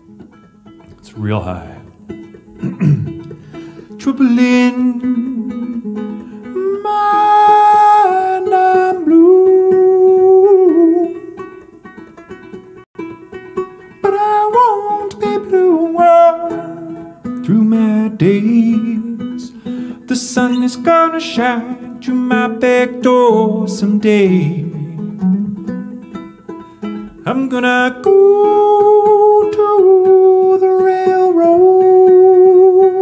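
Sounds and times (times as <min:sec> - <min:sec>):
banjo picking: 0:00.0 - 0:33.0
man singing high notes: 0:00.9 - 0:02.1, 0:04.0 - 0:11.2.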